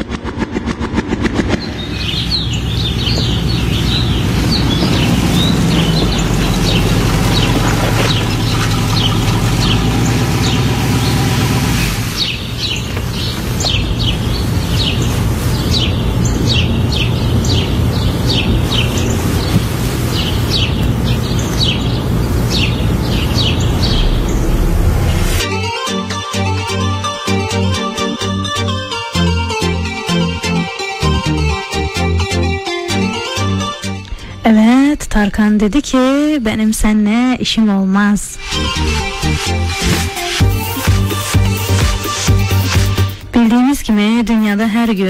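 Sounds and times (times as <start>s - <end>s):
steady low rumble: 0.0s - 25.5s
birds chirping: 1.5s - 25.4s, 26.4s - 45.0s.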